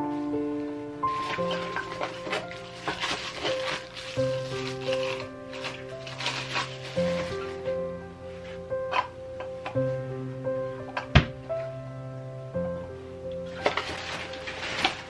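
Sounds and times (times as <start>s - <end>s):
background music with held notes: 0.0s - 15.0s
plastic bag crinkling: 1.1s - 7.7s, 13.4s - 15.0s.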